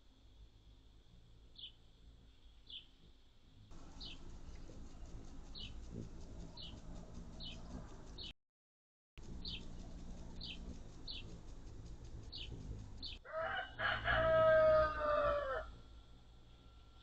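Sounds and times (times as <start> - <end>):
small bird chirping: 1.5 - 3.0, 3.7 - 8.3, 9.2 - 13.3
rooster crowing: 13.2 - 15.9.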